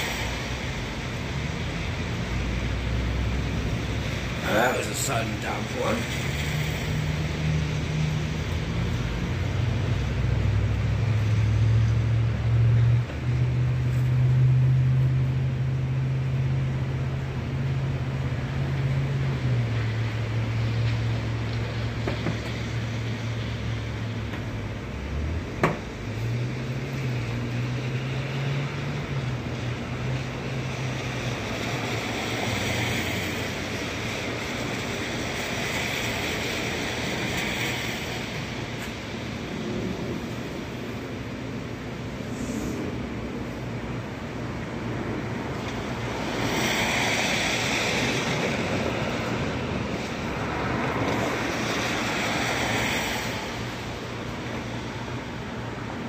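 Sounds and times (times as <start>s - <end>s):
low mechanical drone: 36.0s - 56.0s
faint hiss: 42.2s - 43.1s.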